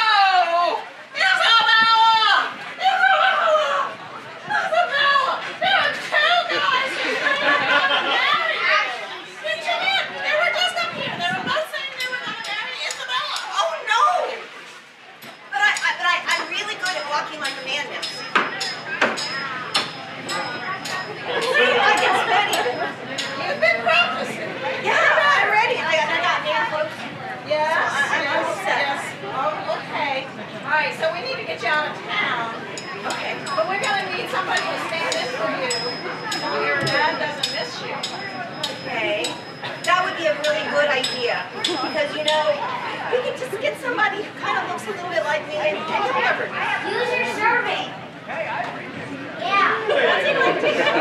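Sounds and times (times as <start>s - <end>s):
voices talking: 0.0s - 51.0s.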